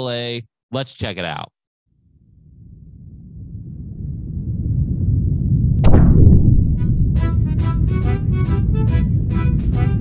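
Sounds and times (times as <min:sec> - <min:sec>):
deep rumble: 0:02.2 - 0:10.0
sharp crack: 0:05.8 - 0:07.6
falling sweep: 0:05.8 - 0:07.7.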